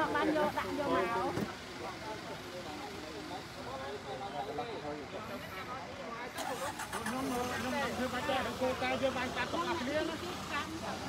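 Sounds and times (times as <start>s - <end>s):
motor traffic: 0.0s - 11.0s
people talking: 0.0s - 11.0s.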